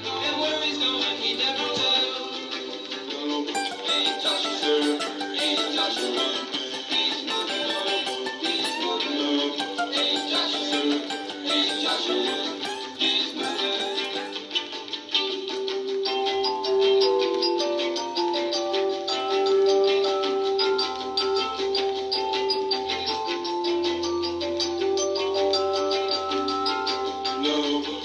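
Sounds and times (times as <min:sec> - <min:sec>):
strummed acoustic guitar: 0:00.0 - 0:15.2
held instrument notes: 0:03.5 - 0:15.1.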